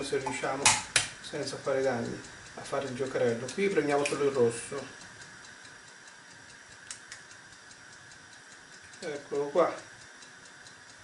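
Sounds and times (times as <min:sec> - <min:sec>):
clockwork ticking: 0:00.0 - 0:11.0.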